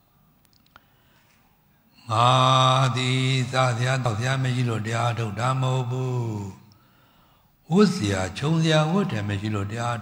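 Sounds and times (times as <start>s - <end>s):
man chanting in monotone: 2.0s - 6.7s, 7.6s - 10.0s.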